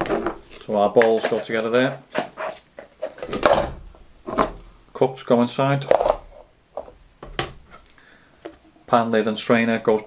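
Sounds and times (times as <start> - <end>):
plastic bowls clacking: 0.0 - 4.7, 5.8 - 8.6.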